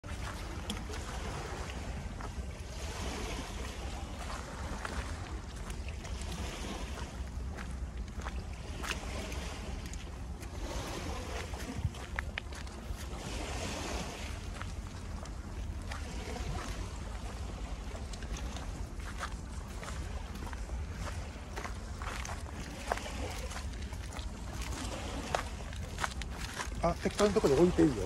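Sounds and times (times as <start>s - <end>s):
wind buffeting microphone: 0.0s - 28.0s
footsteps on gritty concrete: 18.7s - 28.0s.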